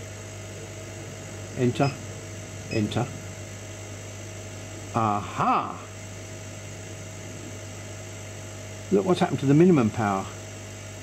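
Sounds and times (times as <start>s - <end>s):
faint high whine: 0.0s - 11.0s
low electrical hum: 0.0s - 11.0s.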